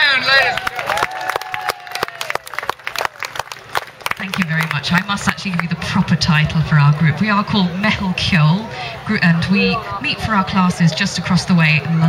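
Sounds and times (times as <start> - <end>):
audience applauding: 0.1 - 5.8.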